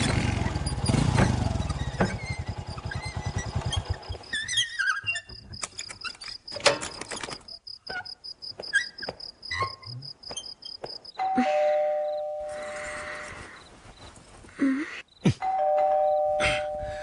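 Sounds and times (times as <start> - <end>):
crickets chirping: 1.6 - 15.3
two-tone doorbell chime: 11.2 - 13.2, 15.5 - 17.0.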